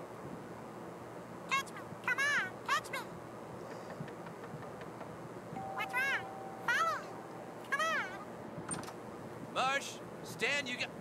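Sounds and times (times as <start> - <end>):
faint steady high tone: 5.5 - 8.3.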